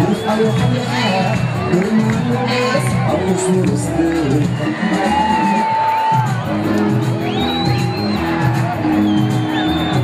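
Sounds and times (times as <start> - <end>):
crowd cheering and whooping: 0.0 - 10.0
music with steady beat: 0.0 - 10.0.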